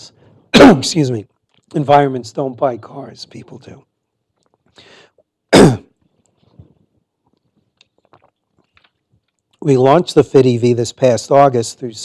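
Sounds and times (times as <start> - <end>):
faint small noises: 0.0 - 10.0
man coughing: 0.6 - 1.0, 5.5 - 5.9.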